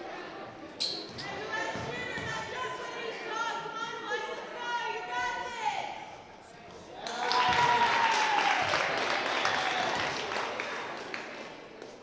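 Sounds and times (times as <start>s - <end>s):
crowd cheering and clapping: 7.0s - 11.4s.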